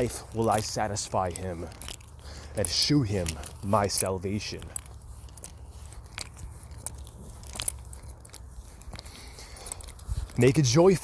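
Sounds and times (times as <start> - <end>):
low steady hum: 0.0 - 11.0
small clicks and crackles: 0.0 - 11.0.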